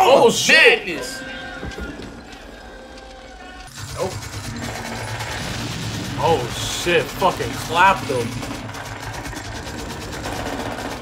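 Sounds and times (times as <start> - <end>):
rapid automatic gunfire: 3.6 - 11.0.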